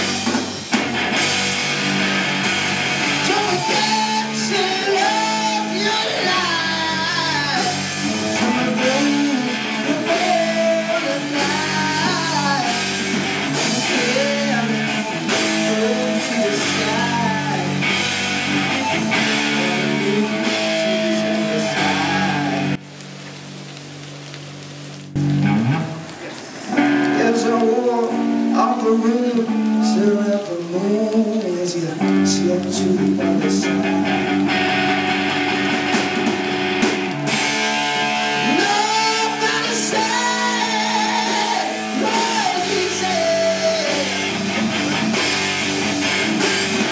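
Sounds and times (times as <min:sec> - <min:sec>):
hard rock band playing: 0:00.0 - 0:22.8, 0:25.2 - 0:30.2, 0:32.0 - 0:46.9.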